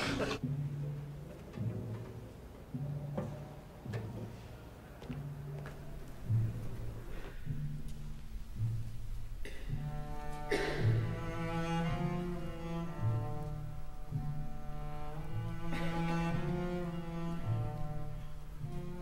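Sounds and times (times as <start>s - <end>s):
double bass low notes: 0.4s - 19.0s.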